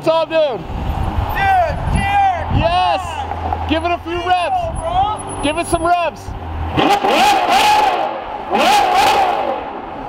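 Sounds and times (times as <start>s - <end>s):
car engine revving: 2.2s - 10.0s.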